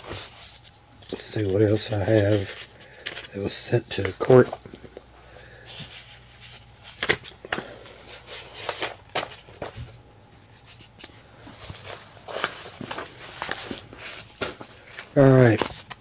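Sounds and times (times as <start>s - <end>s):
paper shuffling: 0.0s - 5.0s, 5.6s - 16.0s.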